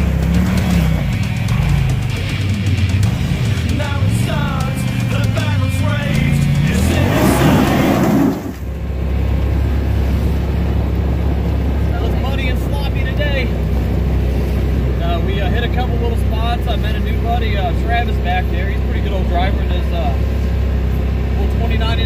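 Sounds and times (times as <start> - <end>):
heavy metal music: 0.0 - 8.7
vehicle engine droning: 0.0 - 22.0
people talking: 3.4 - 8.2, 11.8 - 13.6, 15.0 - 20.3, 21.3 - 22.0.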